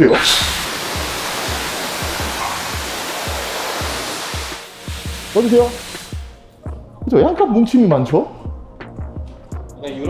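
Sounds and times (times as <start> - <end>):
pressure washer spraying: 0.0 - 6.5
background music with beat: 0.2 - 10.0.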